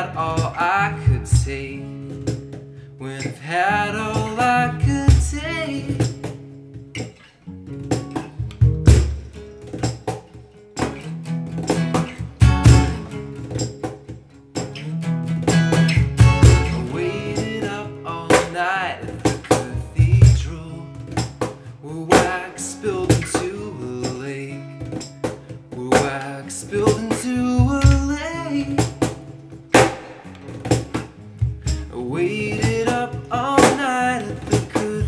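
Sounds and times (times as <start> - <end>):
cajon slaps and bass hits: 0.0 - 2.7, 4.2 - 35.0
acoustic guitar strumming: 0.0 - 35.0
wavering vocal line: 16.7 - 19.1.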